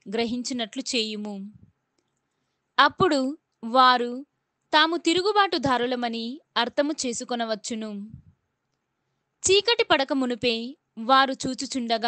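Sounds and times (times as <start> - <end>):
person reading aloud: 0.0 - 1.6, 2.8 - 4.2, 4.8 - 8.2.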